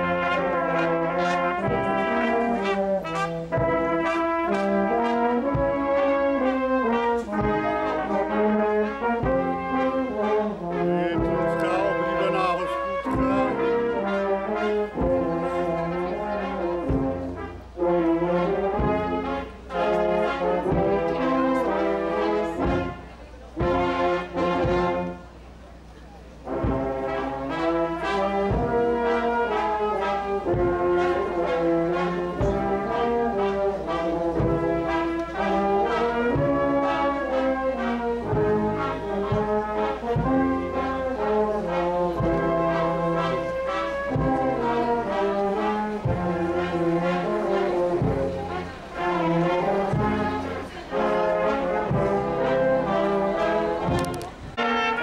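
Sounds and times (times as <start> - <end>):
brass band playing a march: 0.0 - 55.0
bass drum beat: 11.1 - 13.8, 49.9 - 50.4.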